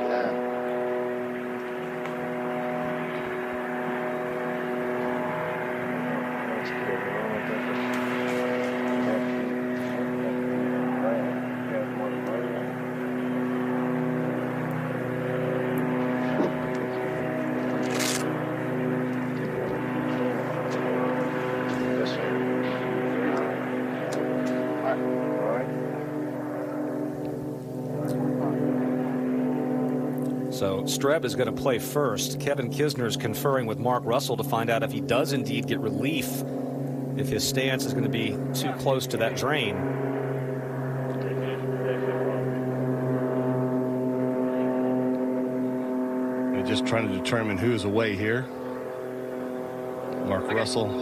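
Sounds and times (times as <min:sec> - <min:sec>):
steady mechanical drone: 0:00.0 - 0:51.0
faint voices: 0:03.1 - 0:29.7, 0:37.1 - 0:51.0
faint distant voices: 0:05.8 - 0:15.3.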